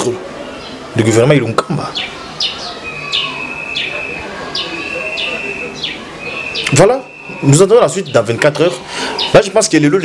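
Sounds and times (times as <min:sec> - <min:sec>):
bird call with high whistle: 0:02.4 - 0:07.8.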